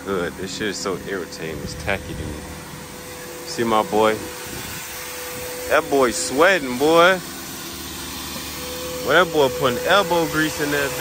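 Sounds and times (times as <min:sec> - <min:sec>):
shop vacuum running: 0:00.0 - 0:11.0.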